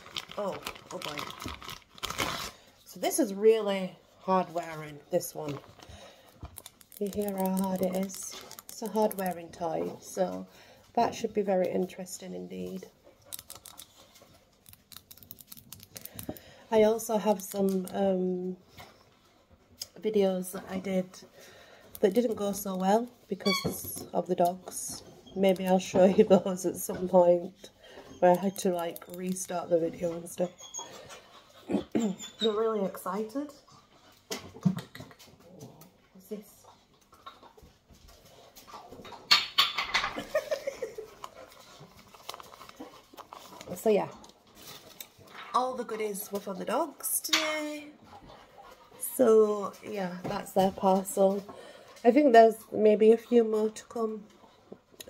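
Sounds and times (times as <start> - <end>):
fingernails clicking on rubber toy: 6.5 - 9.4, 13.3 - 14.0, 14.6 - 16.4
dogs whining and yipping: 30.4 - 31.2.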